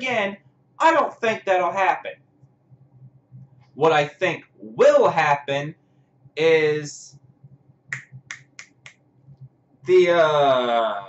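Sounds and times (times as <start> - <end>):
finger snaps: 7.9 - 9.0.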